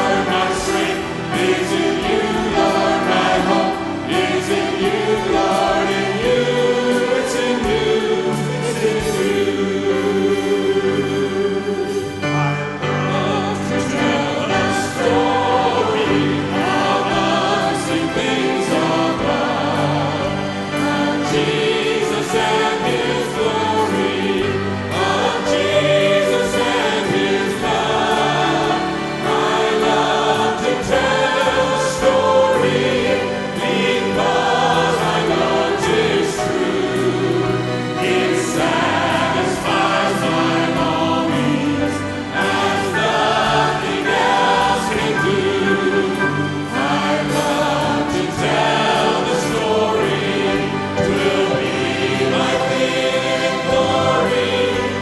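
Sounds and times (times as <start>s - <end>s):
group singing gospel song: 0.0s - 12.2s, 13.1s - 55.0s.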